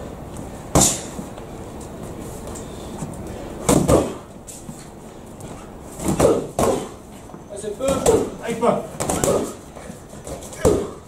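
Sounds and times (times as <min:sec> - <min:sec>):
gym room noise: 0:00.0 - 0:11.0
punch impact: 0:03.6 - 0:04.2.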